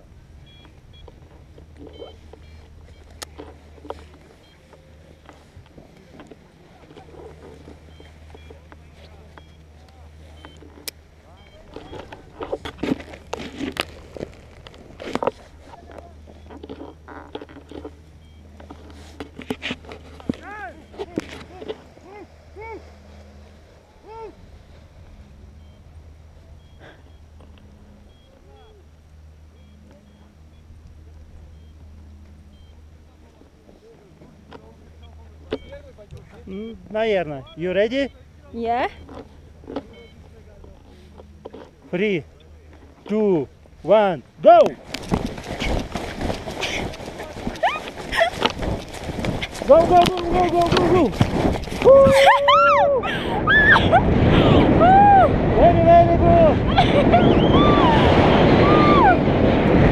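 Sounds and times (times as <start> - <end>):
steady low rumble: 0.0 - 59.9
muffled voices: 1.8 - 13.6.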